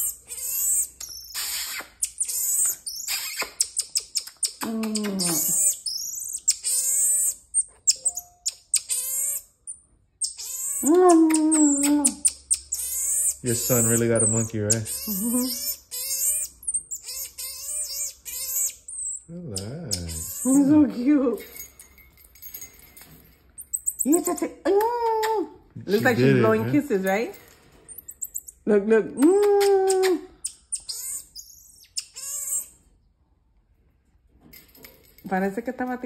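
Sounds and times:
marmoset quavering calls: 0.0 - 9.5, 10.2 - 20.9, 29.9 - 32.7.

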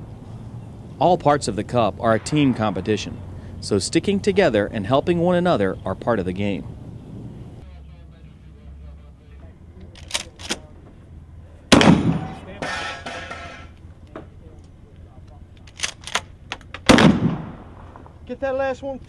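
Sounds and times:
shotgun shots with ringing tail: 2.0 - 3.6, 11.7 - 12.5, 16.9 - 17.9
shotgun action clicks and clacks: 9.9 - 10.6, 15.6 - 16.9.

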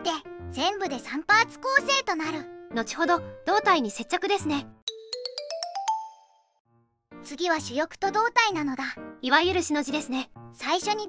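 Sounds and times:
rising plucked jingle: 4.9 - 6.6.

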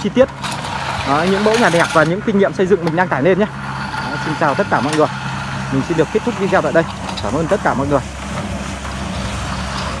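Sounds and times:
concrete mixer engine running: 0.0 - 10.0.

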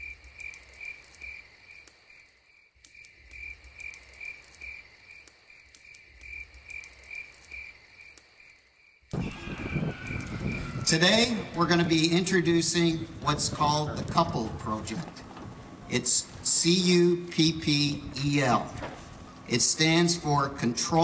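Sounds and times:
insects chirping: 0.0 - 12.5.

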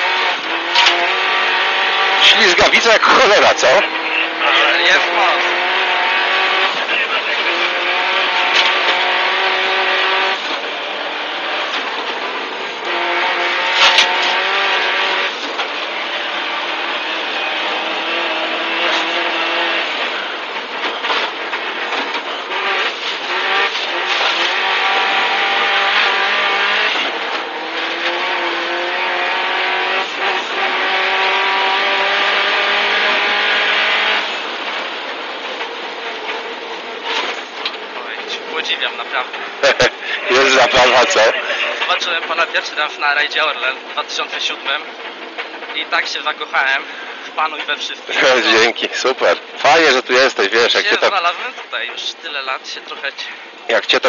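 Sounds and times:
car engine revving through gears: 0.0 - 54.0.

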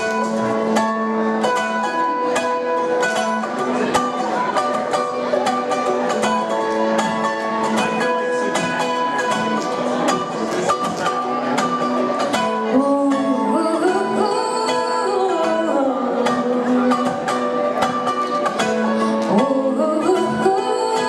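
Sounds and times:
mandolin picking quick notes: 0.0 - 21.0.

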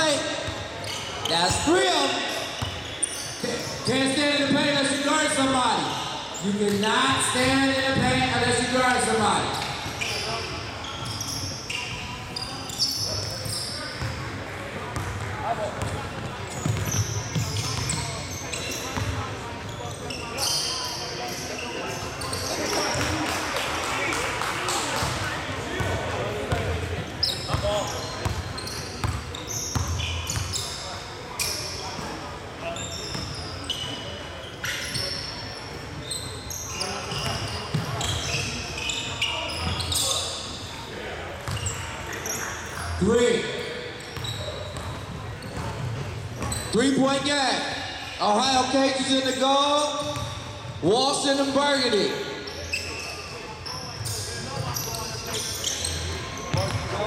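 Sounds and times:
sneaker squeaks: 0.0 - 14.4, 15.0 - 23.3, 24.7 - 57.0.

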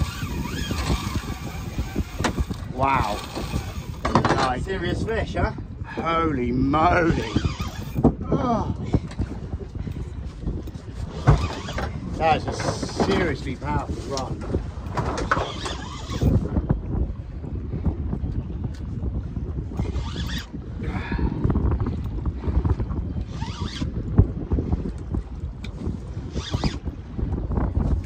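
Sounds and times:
sea noise: 0.0 - 18.2, 19.5 - 28.0
wind: 0.0 - 28.0
wind rumble on microphone: 0.0 - 28.0.

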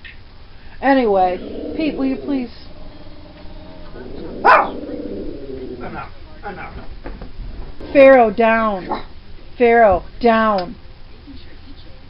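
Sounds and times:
dog barking: 4.3 - 4.9.

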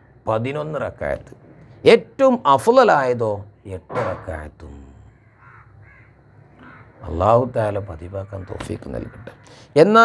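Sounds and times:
faint bird calls: 4.8 - 9.8.

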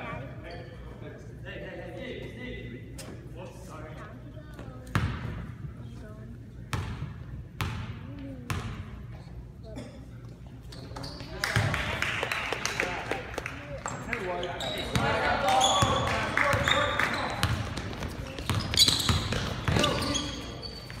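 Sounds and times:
mixed court noise: 6.6 - 21.0.

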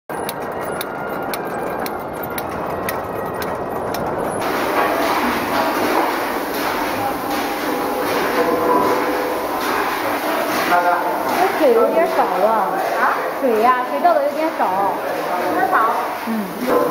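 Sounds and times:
sharp machine clicks: 0.1 - 16.1
machine clattering: 0.1 - 16.9
water splashing into tank: 4.4 - 16.9.

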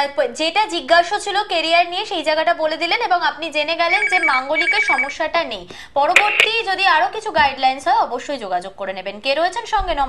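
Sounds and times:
people talking: 0.0 - 10.0
telephone ringing: 3.9 - 5.2.

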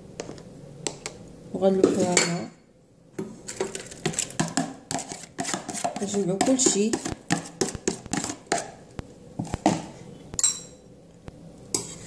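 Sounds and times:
metal pot scraping on countertop: 3.4 - 8.7, 11.7 - 12.0.

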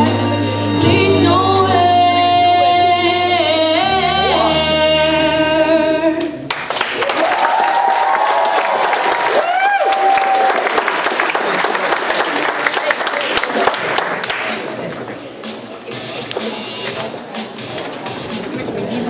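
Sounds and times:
audience applauding and cheering: 6.5 - 14.8
long whoops: 7.0 - 10.6.

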